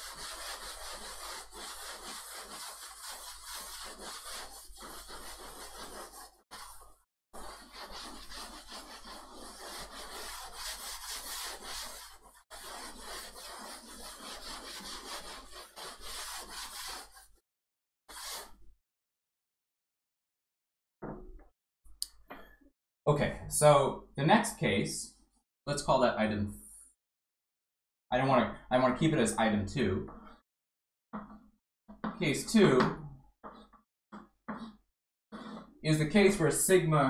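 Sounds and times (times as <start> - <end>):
chalkboard eraser rubbing blackboard: 0.0 - 17.4, 18.1 - 18.6, 31.2 - 32.8, 33.4 - 36.4.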